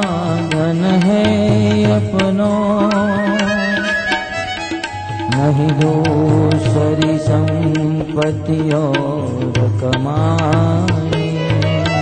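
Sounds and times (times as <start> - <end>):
man singing long notes: 0.0 - 4.6, 5.2 - 12.0
drum strokes: 0.0 - 12.0
instrumental accompaniment: 0.0 - 12.0.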